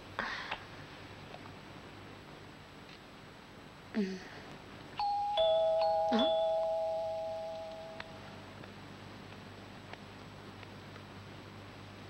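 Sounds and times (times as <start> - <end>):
two-tone doorbell chime: 5.0 - 8.4.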